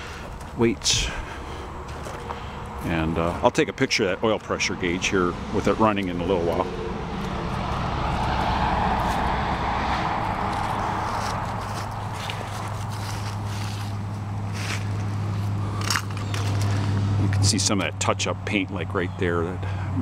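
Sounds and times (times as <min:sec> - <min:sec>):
footsteps crunching on gravel: 0:00.0 - 0:04.6, 0:07.2 - 0:17.5
tractor engine idling: 0:00.0 - 0:20.0.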